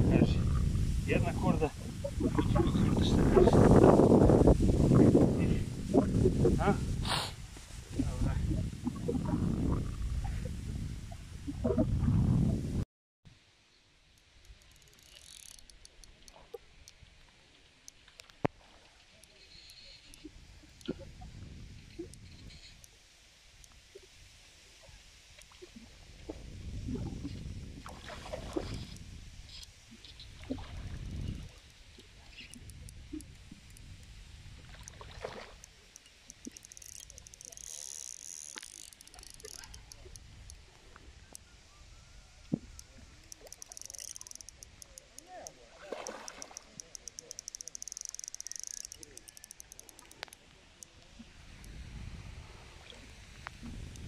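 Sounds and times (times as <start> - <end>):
wind gusts on microphone: 0.0 - 12.8, 20.3 - 22.7, 26.0 - 31.6, 51.1 - 54.0.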